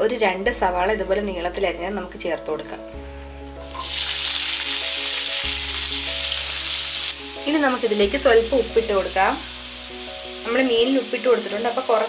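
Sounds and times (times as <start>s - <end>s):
onions sizzling in hot oil: 3.6s - 12.0s.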